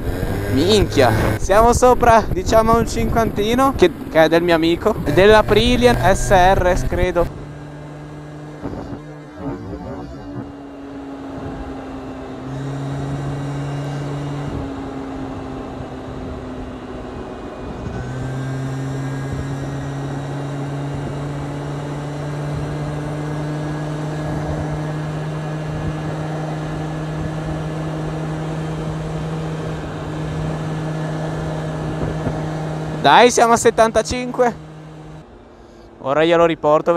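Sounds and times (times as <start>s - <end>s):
scooter engine cruising: 0.0s - 35.9s
wind and road rush: 0.0s - 36.9s.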